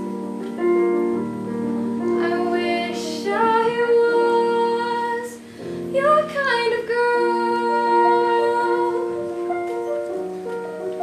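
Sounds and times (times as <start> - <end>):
piano accompaniment: 0.0 - 11.0
woman singing: 2.0 - 9.5.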